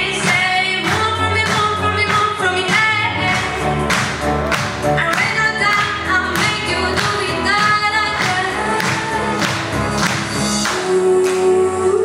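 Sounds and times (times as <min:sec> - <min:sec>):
mixed choir singing pop song: 0:05.0 - 0:12.0.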